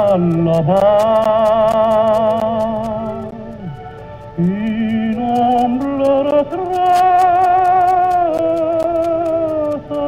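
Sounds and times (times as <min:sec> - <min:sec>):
operatic tenor singing: 0:00.0 - 0:03.8, 0:04.4 - 0:10.0
recording crackle: 0:00.0 - 0:10.0.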